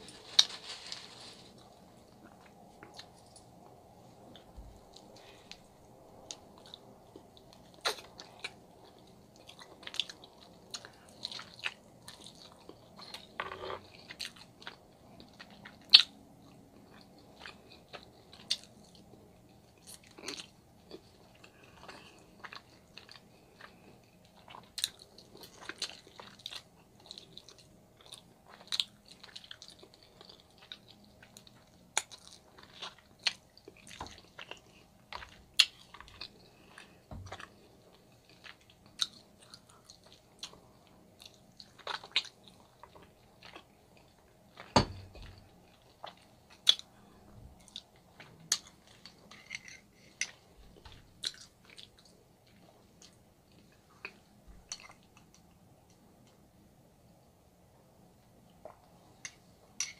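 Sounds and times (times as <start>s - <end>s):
person chewing meat: 1.6s - 56.3s.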